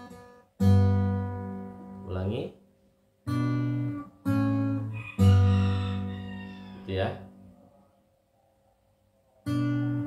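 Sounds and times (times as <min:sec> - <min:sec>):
acoustic guitar chords ringing: 0:00.0 - 0:06.1, 0:09.5 - 0:10.0.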